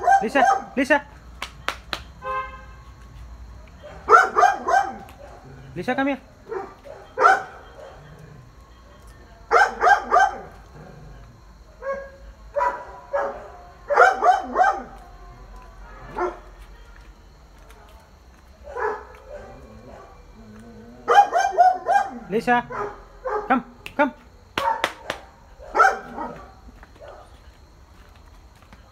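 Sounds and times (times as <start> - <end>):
dog barking: 0.0 - 0.8, 3.8 - 5.6, 6.4 - 8.2, 9.5 - 10.6, 11.8 - 15.1, 15.9 - 16.5, 18.6 - 20.2, 21.0 - 23.6, 24.6 - 27.4.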